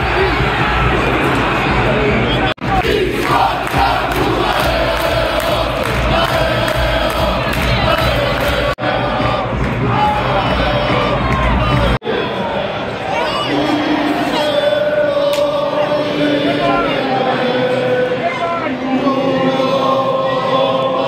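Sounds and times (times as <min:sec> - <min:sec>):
crowd cheering: 0:00.0 - 0:21.0
stadium crowd chanting: 0:00.0 - 0:21.0.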